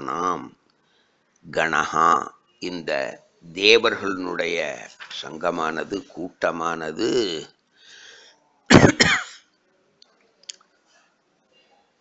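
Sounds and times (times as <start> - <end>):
faint breath: 0.8 - 1.4, 7.7 - 8.6
man clearing his throat: 8.7 - 9.4.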